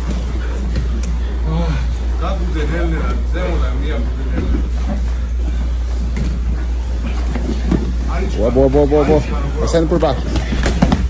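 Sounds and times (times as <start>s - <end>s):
bodies scuffling on mats: 0.0s - 1.2s, 2.4s - 11.0s.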